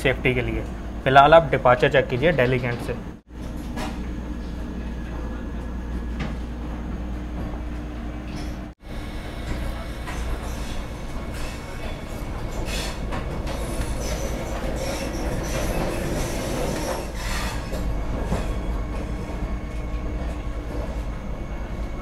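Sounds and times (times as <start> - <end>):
train rumbling on tracks: 6.5 - 22.0.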